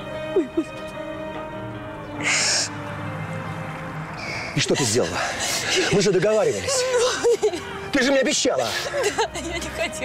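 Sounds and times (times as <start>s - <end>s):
film score music with low notes: 0.0s - 10.0s.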